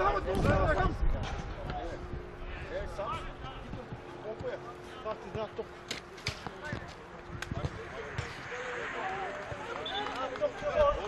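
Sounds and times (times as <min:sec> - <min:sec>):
players' voices calling: 0:03.2 - 0:11.0
football kicked and bouncing on turf: 0:03.7 - 0:04.6, 0:06.3 - 0:08.4.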